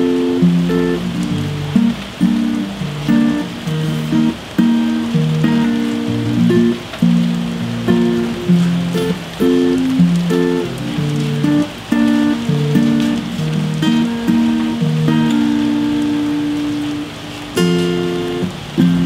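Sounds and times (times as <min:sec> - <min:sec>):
acoustic guitar picking: 0:00.0 - 0:19.0
rain hissing: 0:00.0 - 0:19.0.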